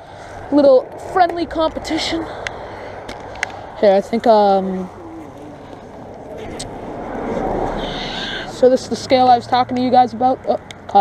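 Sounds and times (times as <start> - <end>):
car passing by: 0.0 - 10.9.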